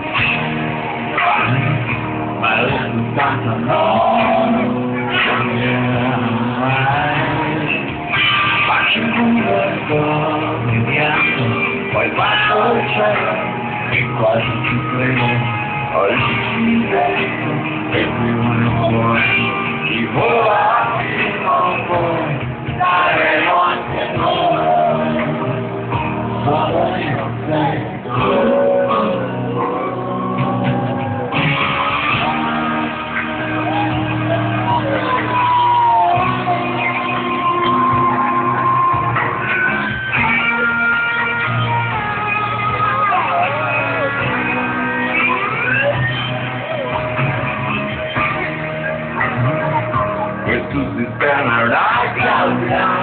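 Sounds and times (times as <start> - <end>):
electric guitar: 0.0 - 53.0
live rock band playing: 0.0 - 53.0.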